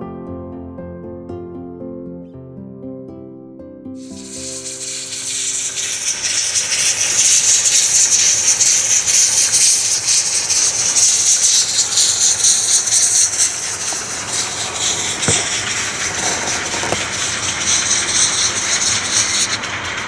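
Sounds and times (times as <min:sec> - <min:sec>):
steam locomotive hissing: 0:04.0 - 0:20.0.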